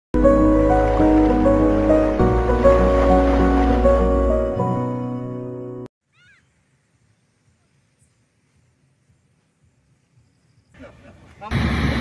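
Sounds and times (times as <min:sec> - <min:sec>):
high-pitched animal chirps: 0:06.1 - 0:06.5.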